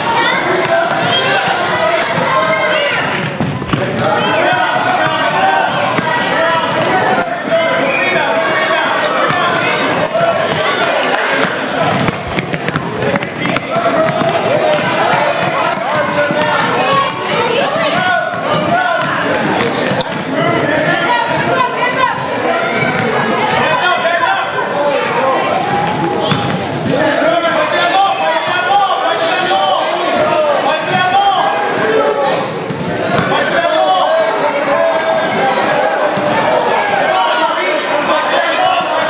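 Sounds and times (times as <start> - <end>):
children and spectators chattering: 0.0 - 39.0.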